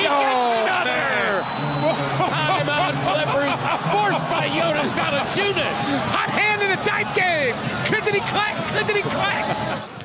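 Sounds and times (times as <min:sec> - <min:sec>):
sports commentator speaking excitedly: 0:02.4 - 0:09.8.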